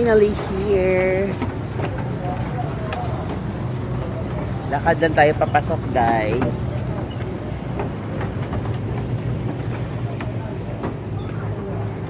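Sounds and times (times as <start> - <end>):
engine humming: 0.0 - 12.0
faint voices: 0.0 - 12.0.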